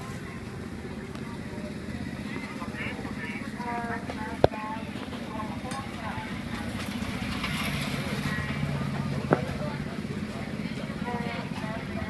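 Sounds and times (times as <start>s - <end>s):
background voices: 0.0s - 12.0s
low engine hum: 0.0s - 12.0s.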